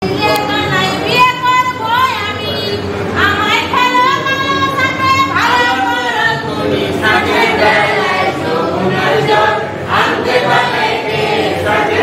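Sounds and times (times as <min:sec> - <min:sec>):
group singing unaccompanied: 0:04.6 - 0:12.0.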